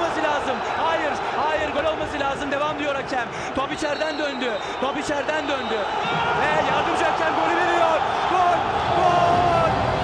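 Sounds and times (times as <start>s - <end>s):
man talking: 0.0s - 8.6s
stadium crowd noise: 0.0s - 10.0s.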